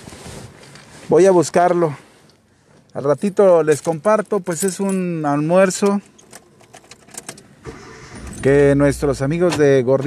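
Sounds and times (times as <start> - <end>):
car engine starting and running: 6.8 - 10.0.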